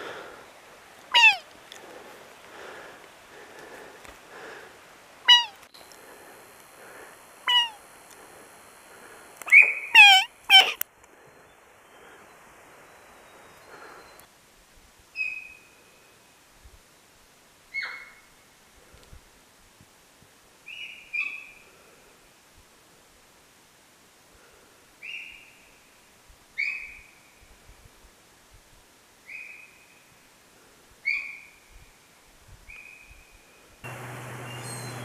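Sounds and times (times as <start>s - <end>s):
high-pitched animal calls: 1.1s - 1.5s, 5.3s - 5.6s, 7.4s - 7.8s, 9.5s - 10.8s
thin high whine: 33.8s - 35.0s.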